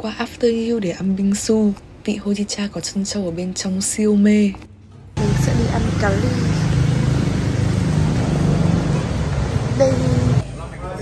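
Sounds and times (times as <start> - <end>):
street traffic: 4.6 - 11.0
vehicle engine humming: 5.2 - 10.6.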